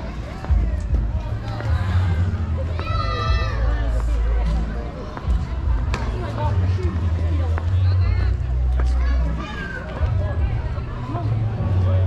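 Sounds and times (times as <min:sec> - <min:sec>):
heavy low rumble on microphone: 0:00.0 - 0:12.0
indistinct voices on street: 0:00.0 - 0:12.0.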